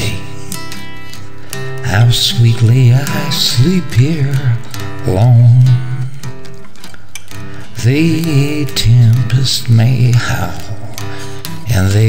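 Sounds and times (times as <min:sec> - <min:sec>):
acoustic guitar notes: 0:00.0 - 0:12.0
person singing folk song: 0:00.0 - 0:12.0.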